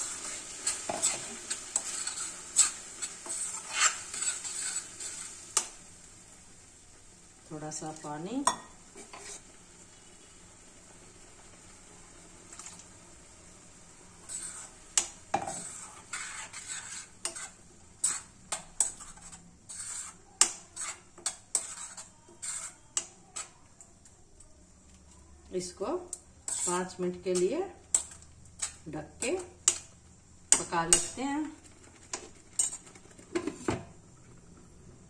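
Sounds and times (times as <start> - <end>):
low sizzle from pan: 0.0 - 35.0
metal ladle clinking and scraping: 20.8 - 23.5.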